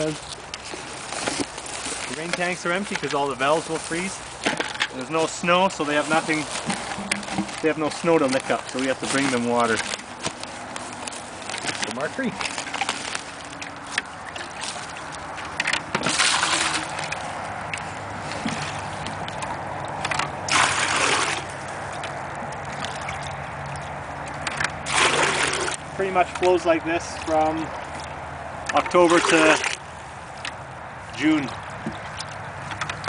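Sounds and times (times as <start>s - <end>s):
creek running: 0.0s - 33.0s
water sloshing splashes: 0.0s - 33.0s.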